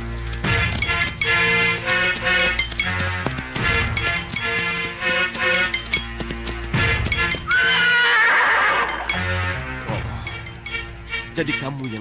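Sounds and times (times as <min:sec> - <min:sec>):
horse whinnying: 0:07.5 - 0:09.6.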